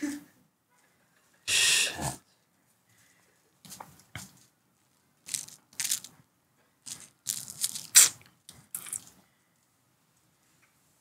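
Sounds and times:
dry crinkling and crunching: 0:05.2 - 0:06.2, 0:06.8 - 0:09.2
plastic packaging handled: 0:05.2 - 0:06.2, 0:06.8 - 0:08.2.

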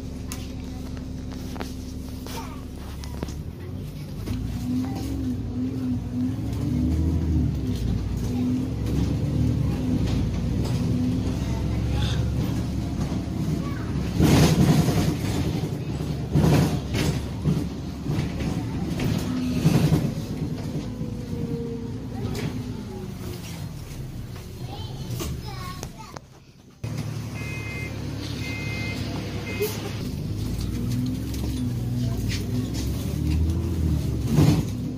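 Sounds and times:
bus engine and road rumble: 0:00.0 - 0:34.9.

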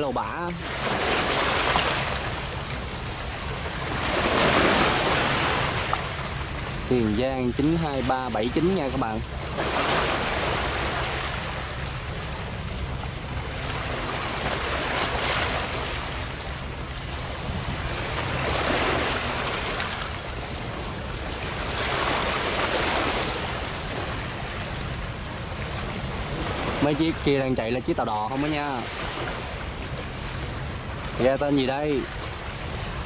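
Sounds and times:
sea waves washing in: 0:00.0 - 0:33.0
wind rumble on microphone: 0:00.0 - 0:33.0.

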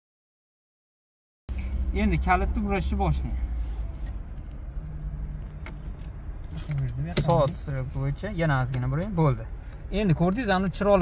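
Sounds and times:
car engine rumble inside cabin: 0:01.5 - 0:11.0.

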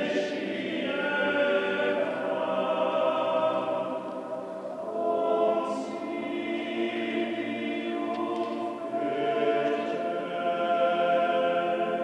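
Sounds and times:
male choir singing unaccompanied: 0:00.0 - 0:12.0.

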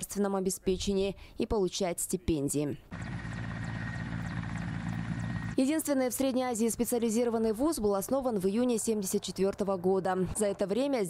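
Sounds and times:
high turbine whine: 0:02.9 - 0:05.6
helicopter rotor low drone: 0:02.9 - 0:10.8.

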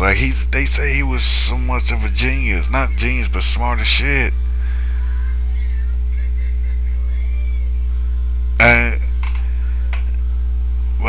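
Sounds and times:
mains hum: 0:00.0 - 0:11.0.

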